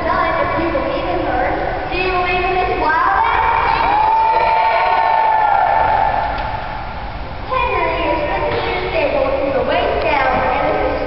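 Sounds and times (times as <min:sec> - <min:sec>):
children cheering and shouting: 0:02.8 - 0:06.4.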